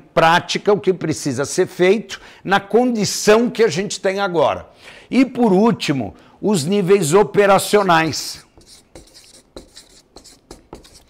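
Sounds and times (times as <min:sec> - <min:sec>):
marker pen writing on paper: 0:08.4 - 0:11.0.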